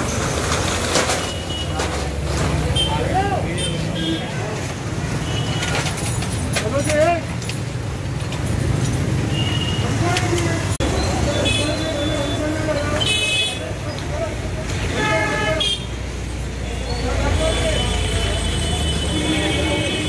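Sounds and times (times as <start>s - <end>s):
low traffic rumble: 0.0s - 20.0s
people talking and calling out: 1.3s - 5.3s, 9.6s - 20.0s.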